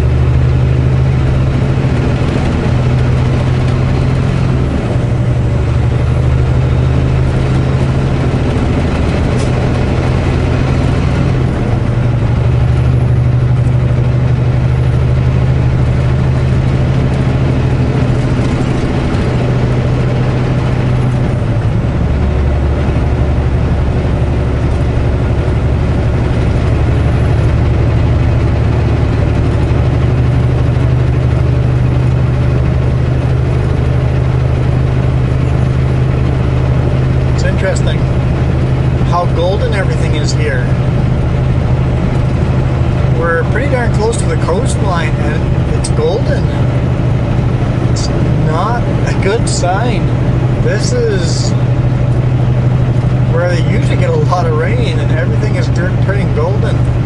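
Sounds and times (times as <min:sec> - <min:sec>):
road noise: 0:00.0 - 0:57.0
truck diesel engine droning: 0:00.0 - 0:57.0.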